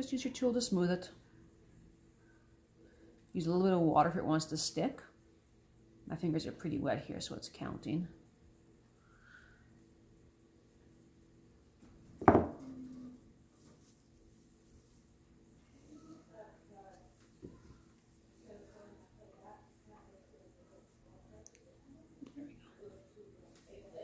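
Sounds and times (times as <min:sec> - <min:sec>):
metal tool knocking on table: 0:12.2 - 0:12.6.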